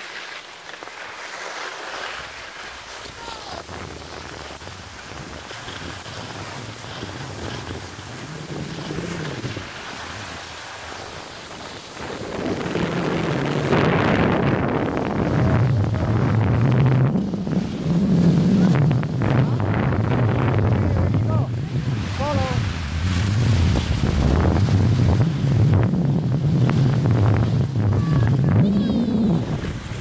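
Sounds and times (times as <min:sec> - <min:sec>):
skis sliding on snow: 0:00.0 - 0:30.0
wind buffeting microphone: 0:03.1 - 0:30.0.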